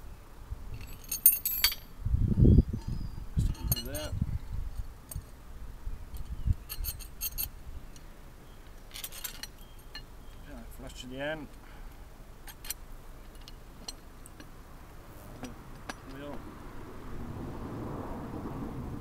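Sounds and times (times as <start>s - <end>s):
metal parts clinking and rattling: 0.8s - 1.9s, 2.8s - 4.1s, 6.1s - 7.6s, 8.8s - 10.1s, 12.4s - 14.6s.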